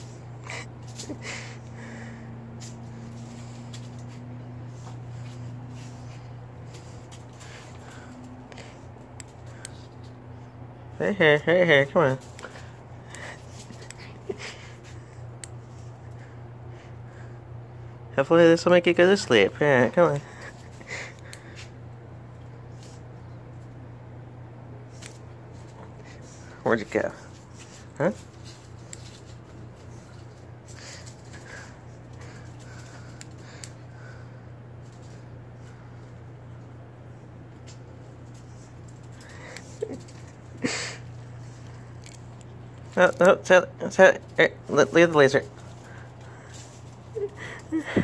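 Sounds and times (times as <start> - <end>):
puppy paws pattering on concrete: 0.0 - 17.3, 18.8 - 23.9, 24.8 - 48.0
steady low hum: 0.0 - 48.0.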